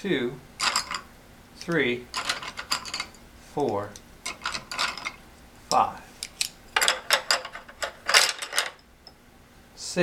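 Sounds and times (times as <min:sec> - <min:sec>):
wooden spindles clattering: 0:00.6 - 0:05.9, 0:06.8 - 0:08.8.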